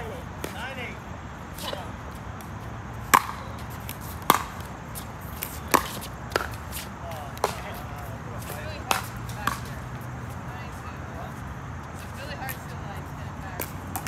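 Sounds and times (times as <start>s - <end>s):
paddles striking plastic ball: 3.1s - 4.7s.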